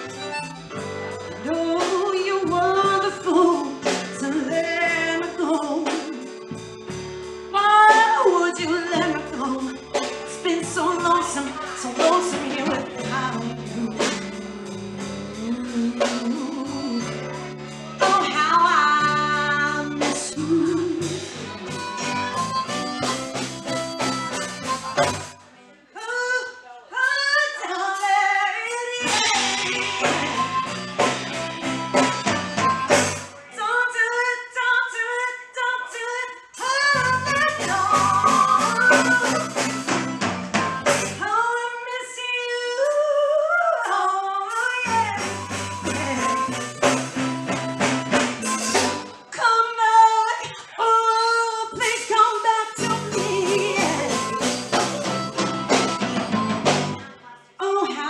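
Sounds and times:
bass guitar: 0.0 - 25.4, 29.0 - 33.5, 36.7 - 41.4, 44.8 - 49.3, 52.8 - 57.1
drums: 0.0 - 25.5, 27.0 - 43.1, 43.8 - 58.0
keyboard: 0.0 - 34.7, 36.4 - 57.8
woman singing: 1.4 - 6.4, 7.5 - 17.4, 18.0 - 21.4, 25.9 - 30.6, 33.5 - 39.8, 41.2 - 46.9, 48.4 - 55.0, 57.0 - 58.0.

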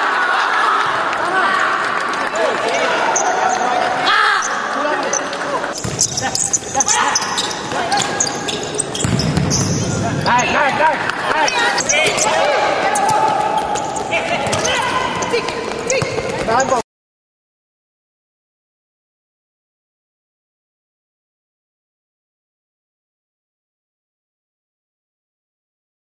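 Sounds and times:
players shouting in a hall: 0.0 - 5.8, 9.9 - 16.2
ball kicked and bouncing: 5.8 - 6.3, 9.0 - 9.9.

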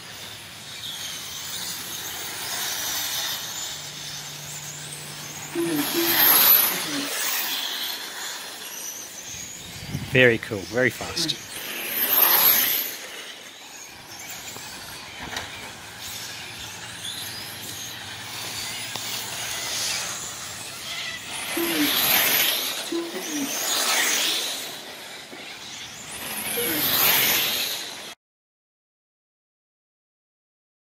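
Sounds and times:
electric toy cars racing: 0.0 - 28.2.

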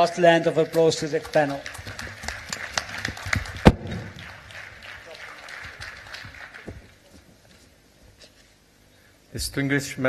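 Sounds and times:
audience applauding: 0.4 - 7.2
loud thump: 3.6 - 4.2.

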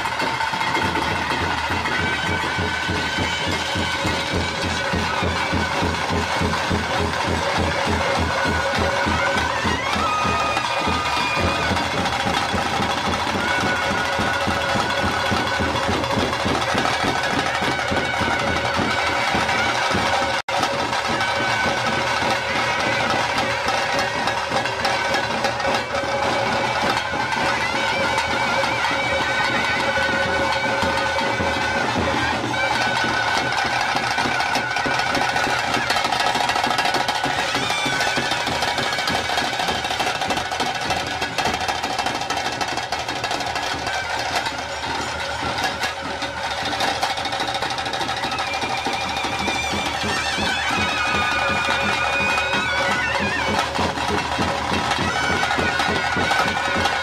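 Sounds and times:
rapid drumming: 0.0 - 57.0.

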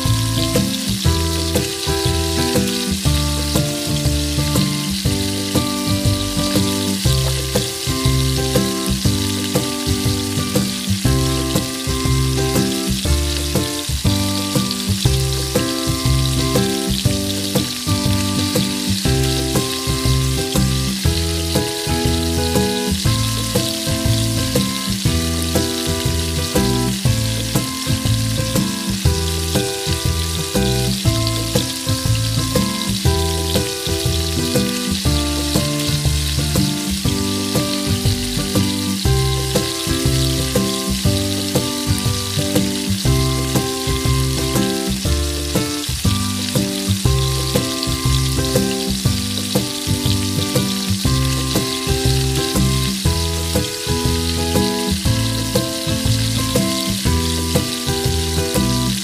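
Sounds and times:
background music with beat: 0.0 - 59.0
sauce sizzling and bubbling: 0.0 - 59.0.

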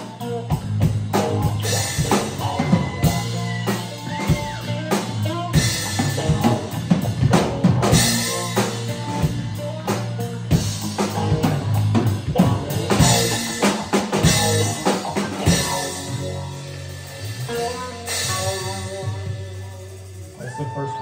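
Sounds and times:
rock band playing: 0.0 - 21.0.

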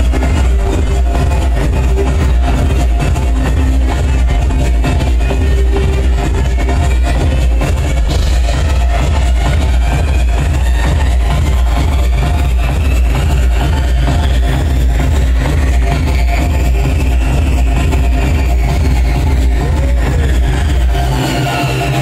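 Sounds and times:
deep bass: 0.0 - 22.0
loud electronic dance music: 0.0 - 22.0.

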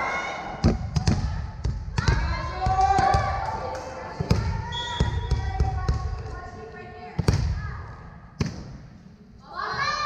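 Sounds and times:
volleyball bouncing on gym floor: 0.6 - 6.5, 7.1 - 7.8
girls shouting: 9.4 - 10.0.

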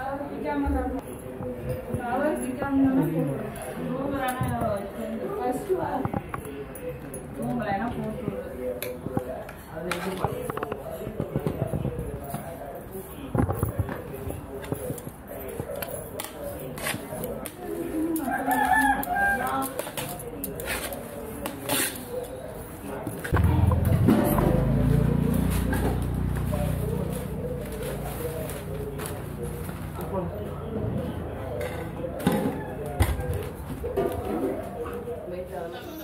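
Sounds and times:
rooster crowing: 18.2 - 19.6.

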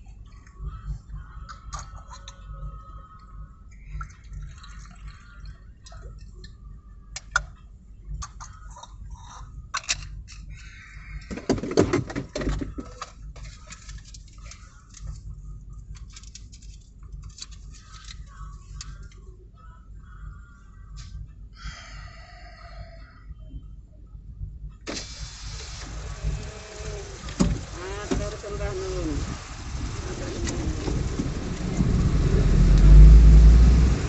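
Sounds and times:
traffic rumble: 24.8 - 34.0.

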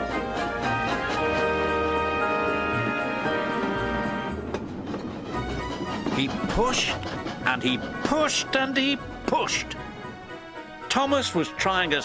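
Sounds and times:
background music: 0.0 - 12.0
train rumbling on track: 0.0 - 12.0.

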